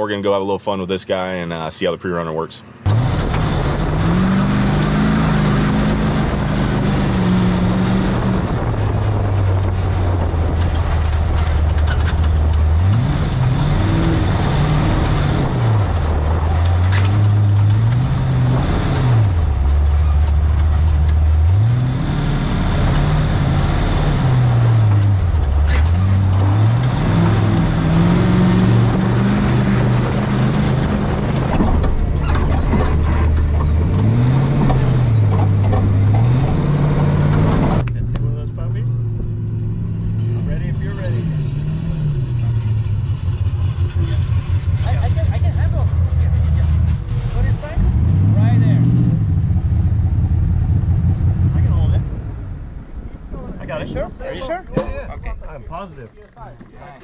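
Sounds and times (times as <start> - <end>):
truck engine revving: 2.7 - 53.1
tyres rumbling over rocks: 24.9 - 37.8.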